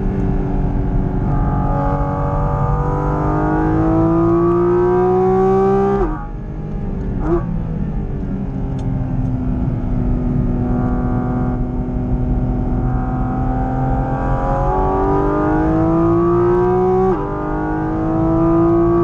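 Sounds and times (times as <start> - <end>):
car engine revving from cabin: 0.0 - 6.3, 9.3 - 19.0.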